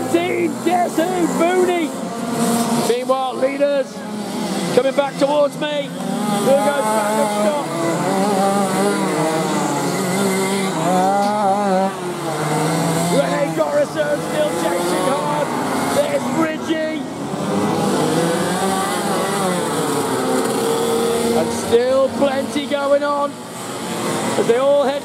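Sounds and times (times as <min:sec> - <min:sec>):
kart engines racing past: 0:00.0 - 0:25.0.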